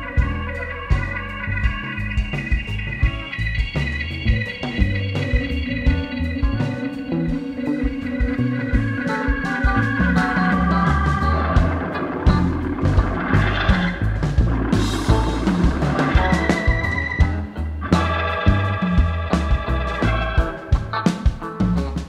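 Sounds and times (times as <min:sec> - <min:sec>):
bass line: 0:00.0 - 0:22.0
organ chords: 0:00.0 - 0:22.0
steady drum beat: 0:00.0 - 0:22.0.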